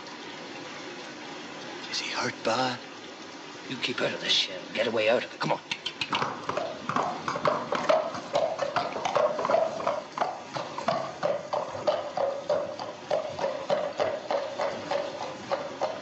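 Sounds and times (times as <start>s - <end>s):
horse hooves clip-clopping on wet street: 5.8s - 16.0s.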